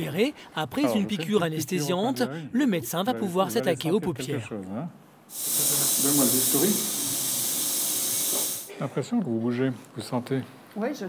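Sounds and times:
loud steady hiss: 0:05.3 - 0:08.7.

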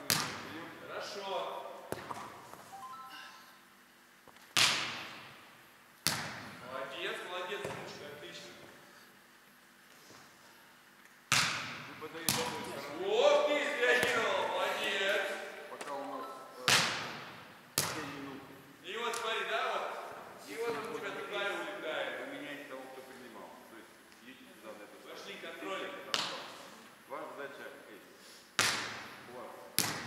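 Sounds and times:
volleyball smack echoing in hall: 0:00.0 - 0:00.6, 0:01.9 - 0:02.6, 0:04.5 - 0:06.6, 0:11.3 - 0:12.8, 0:16.6 - 0:18.3, 0:26.1 - 0:26.6, 0:28.6 - 0:30.0.

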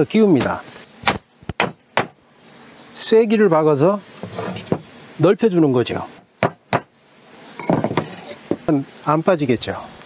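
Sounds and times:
hammer striking wooden post: 0:01.0 - 0:02.2, 0:06.4 - 0:06.9.

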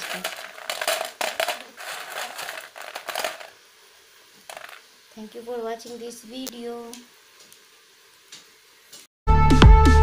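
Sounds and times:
fried snacks crunching and crackling: 0:00.0 - 0:03.6.

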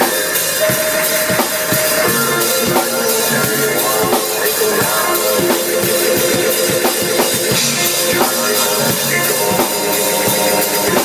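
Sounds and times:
held keyboard notes: 0:00.0 - 0:11.0.

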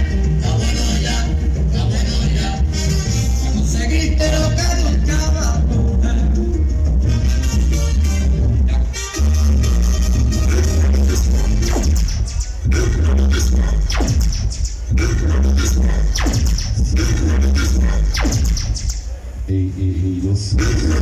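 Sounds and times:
loud electronic dance music: 0:00.0 - 0:19.1, 0:20.5 - 0:21.0.

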